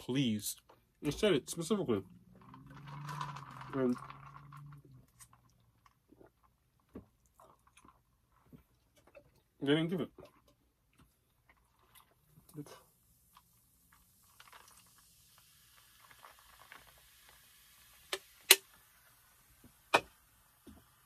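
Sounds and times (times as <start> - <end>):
drink pouring into plastic cup: 1.9 - 9.4, 10.2 - 12.4, 13.3 - 20.9
carbonation fizzing: 11.4 - 21.0.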